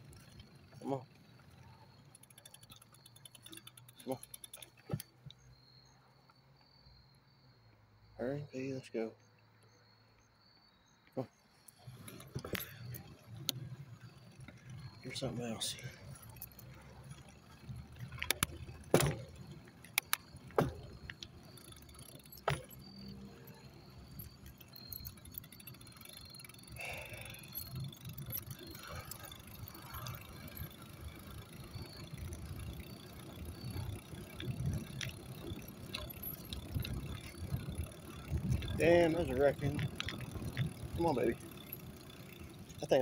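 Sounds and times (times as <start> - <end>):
sharp clinks: 0.1 - 6.0, 11.8 - 43.0
low rumbling movement noise: 31.8 - 41.9.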